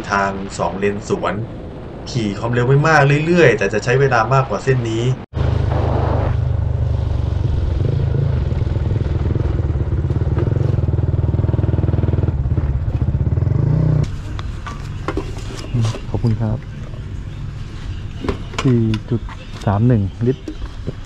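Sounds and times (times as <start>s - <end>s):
motorcycle engine drone: 0.0s - 21.0s
road and wind noise: 0.0s - 21.0s.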